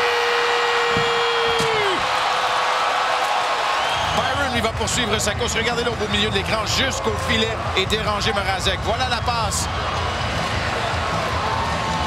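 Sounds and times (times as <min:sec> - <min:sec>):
crowd of voices: 0:00.9 - 0:12.0.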